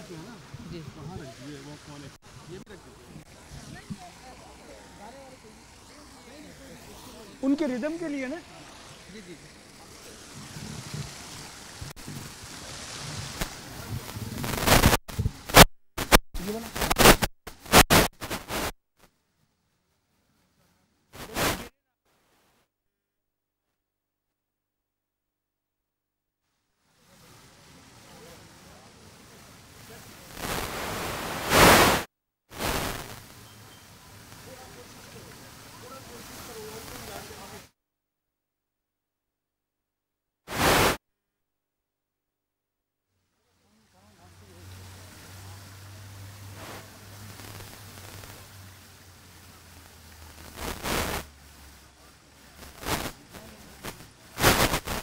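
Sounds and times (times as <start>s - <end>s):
people chattering: 0.0s - 11.8s, 27.0s - 31.1s, 33.3s - 37.7s, 43.4s - 54.4s.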